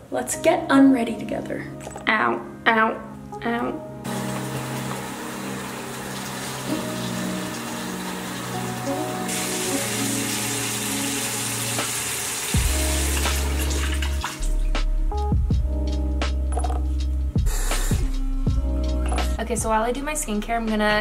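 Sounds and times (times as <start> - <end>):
background music with bass: 12.6 - 21.0.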